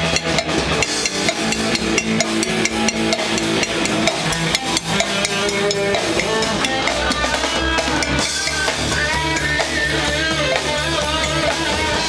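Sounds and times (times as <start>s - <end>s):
drum kit beat: 0.0s - 12.0s
electric guitar notes: 0.0s - 12.0s.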